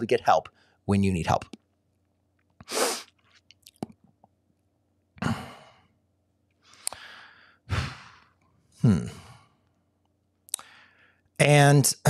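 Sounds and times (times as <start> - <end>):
man breathing out and sighing: 5.2 - 5.8, 6.8 - 9.5.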